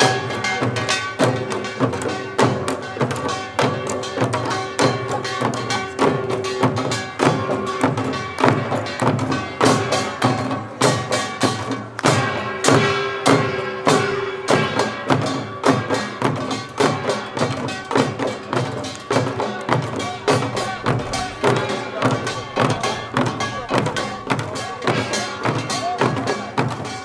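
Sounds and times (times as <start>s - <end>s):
drums beaten hard: 0.0s - 27.0s.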